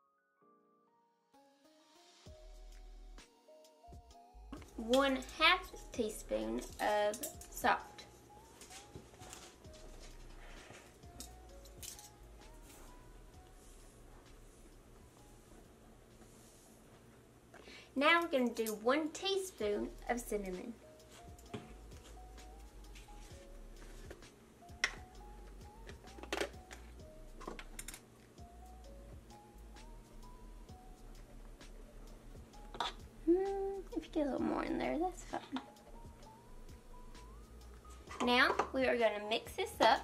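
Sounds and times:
faint background music: 0:00.4 - 0:40.0
metal spoon clicking and scraping: 0:06.6 - 0:07.6.

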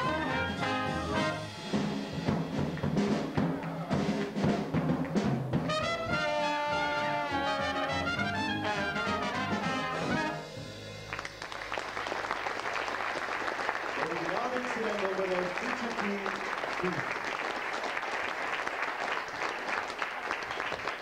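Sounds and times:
sharp drum strokes: 0:00.0 - 0:06.2
jazz band playing: 0:00.0 - 0:13.5.

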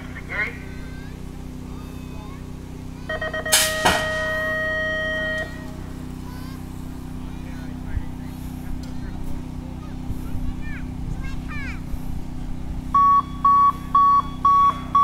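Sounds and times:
steady low hum: 0:00.0 - 0:15.0
quick beeps: 0:03.1 - 0:05.6, 0:13.0 - 0:15.0
long tone: 0:03.1 - 0:05.8, 0:12.9 - 0:15.0
metal gate dropping bang: 0:03.5 - 0:04.6.

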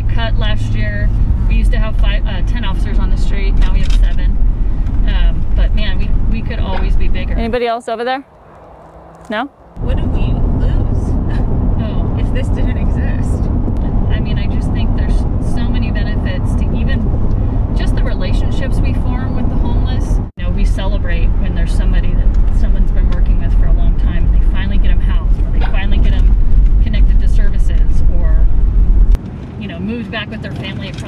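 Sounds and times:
loud low rumble: 0:00.0 - 0:29.2
road and engine rumble: 0:00.0 - 0:31.0
indistinct voices: 0:05.0 - 0:17.1.

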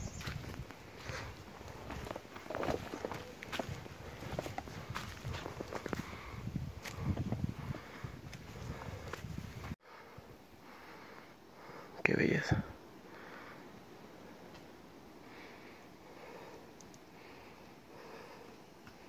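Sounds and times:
footsteps on dry leaves: 0:00.0 - 0:07.1
faint steady hush: 0:00.0 - 0:19.0.

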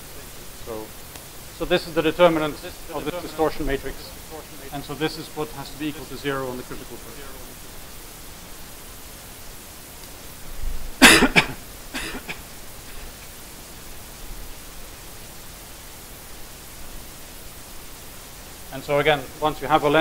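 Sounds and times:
room noise hiss: 0:00.0 - 0:20.0
person coughing: 0:11.0 - 0:12.4.

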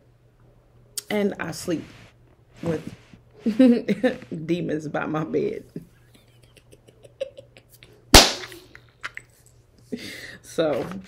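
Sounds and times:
quiet laughter: 0:05.8 - 0:08.1
loud hand slap: 0:08.2 - 0:08.6.

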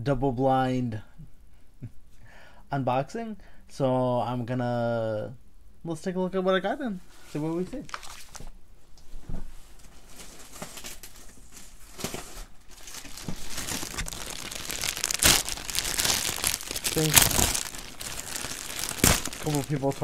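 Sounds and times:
plastic bag crinkling: 0:10.0 - 0:20.0.

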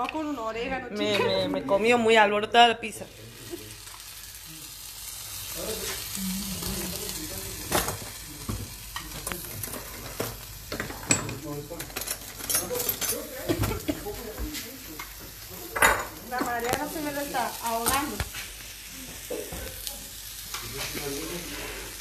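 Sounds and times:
faint sizzle: 0:00.0 - 0:22.0.

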